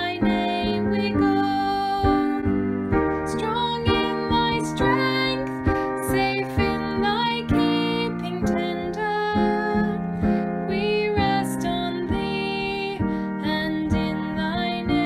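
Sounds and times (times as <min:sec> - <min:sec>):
woman singing a hymn: 0:00.0 - 0:02.6, 0:03.3 - 0:15.0.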